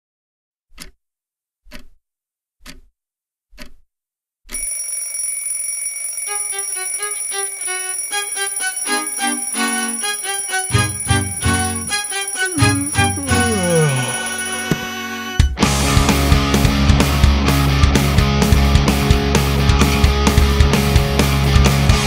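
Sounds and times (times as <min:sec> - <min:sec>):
clock ticking: 0:00.7 - 0:01.0, 0:01.7 - 0:02.0, 0:02.6 - 0:02.9, 0:03.6 - 0:03.8
alarm clock ringing: 0:04.5 - 0:15.5
punk rock band playing: 0:14.6 - 0:22.0.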